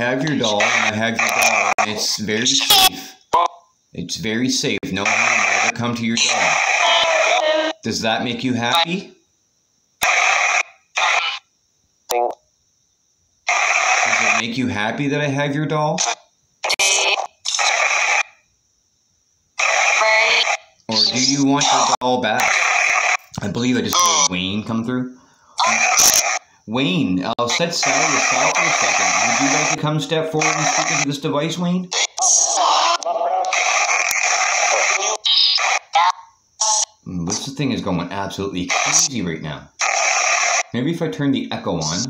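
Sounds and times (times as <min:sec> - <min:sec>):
chopped radio-like noise bursts: 0:00.0 - 0:03.6, 0:04.2 - 0:09.1, 0:10.0 - 0:11.5, 0:13.4 - 0:18.4, 0:19.6 - 0:24.7, 0:25.6 - 0:37.6, 0:38.3 - 0:42.0
garbled voice fragments from phone: 0:00.0 - 0:09.1, 0:13.5 - 0:18.1, 0:19.6 - 0:24.6, 0:25.6 - 0:41.0, 0:41.6 - 0:42.0.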